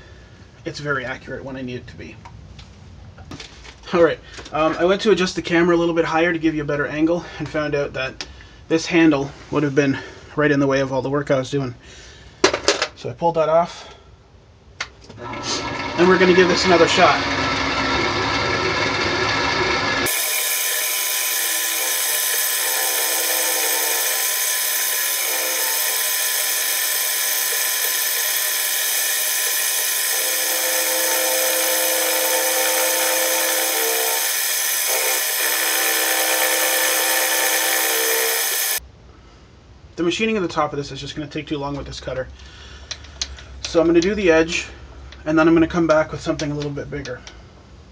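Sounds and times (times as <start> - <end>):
milling machine cutting metal: 15.6 - 38.8.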